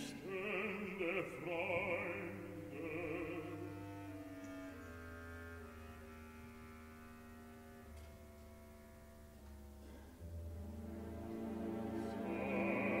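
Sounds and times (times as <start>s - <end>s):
cellos and double basses: 0.0s - 13.0s
soft orchestral chords: 0.0s - 13.0s.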